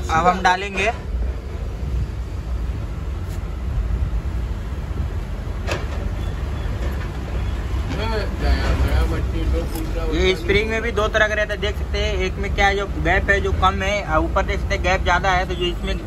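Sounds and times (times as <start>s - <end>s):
low background rumble: 0.0s - 15.4s.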